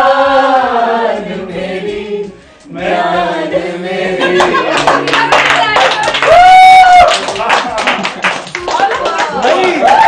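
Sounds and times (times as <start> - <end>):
group singing: 0.0 - 6.0
group clapping hands: 4.2 - 10.0.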